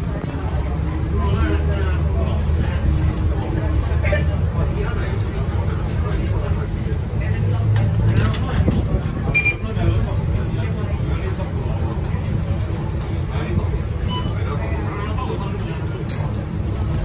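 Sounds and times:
bus engine low rumble: 0.0s - 17.0s
short high beep: 9.3s - 9.6s, 14.1s - 14.4s.

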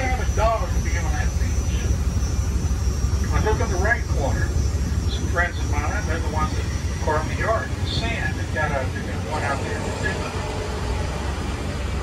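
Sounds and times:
trolley engine low rumble: 0.0s - 12.0s.

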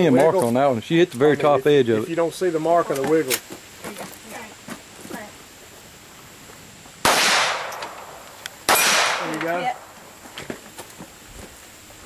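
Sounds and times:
gunshot: 7.0s - 9.6s.

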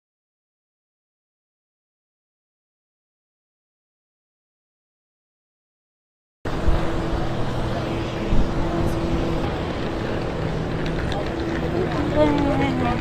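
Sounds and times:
constant low hum: 6.5s - 13.0s
vehicle engine running: 6.5s - 13.0s.

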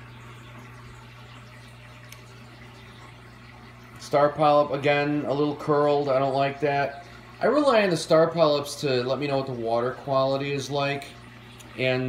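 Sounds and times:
aquarium low hum: 0.0s - 12.0s
running water: 0.0s - 12.0s.

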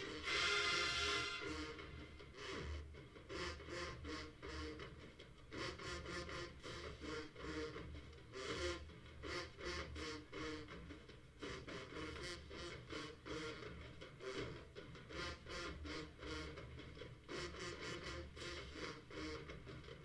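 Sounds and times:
distant marching drumline: 0.0s - 20.0s.

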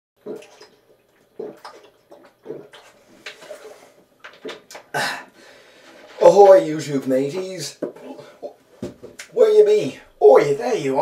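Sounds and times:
man gulping water: 0.2s - 5.4s, 7.9s - 9.3s.

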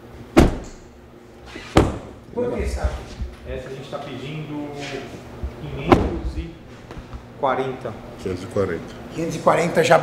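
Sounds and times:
car doors shutting: 0.3s - 0.9s.

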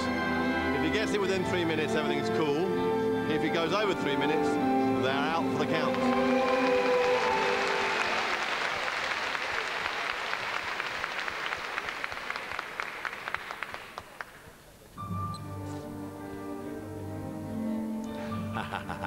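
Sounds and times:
orchestral music with held notes: 0.0s - 8.4s, 15.0s - 19.0s
arena audience applauding: 5.7s - 14.5s.

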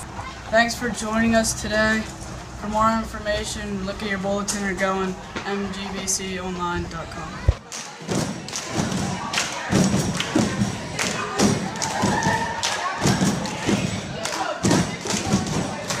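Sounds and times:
heavy thumps: 7.5s - 12.4s, 13.0s - 16.0s.

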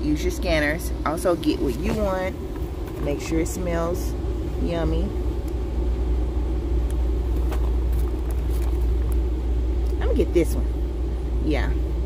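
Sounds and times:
low store background rumble: 0.0s - 12.0s
plastic wrapper crinkling: 7.4s - 9.2s.

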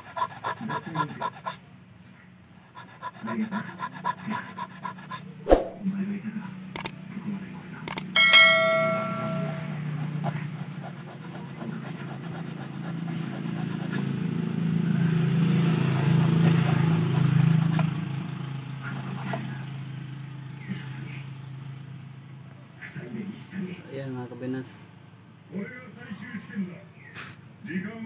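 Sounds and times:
steel tool clinking on wire: 7.9s - 9.8s.

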